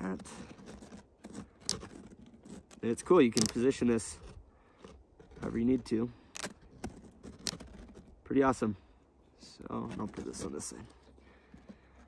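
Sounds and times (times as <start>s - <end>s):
solar panel handling clicks and scrapes: 0.0s - 8.2s, 9.5s - 12.0s.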